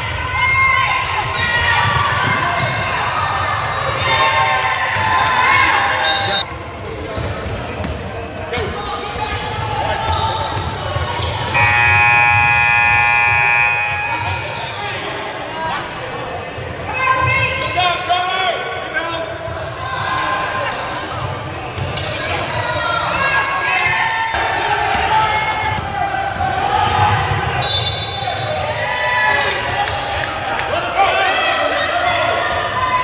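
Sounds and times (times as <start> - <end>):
spectators shouting and chatting: 0.0 - 33.0
steady horn: 11.5 - 14.6.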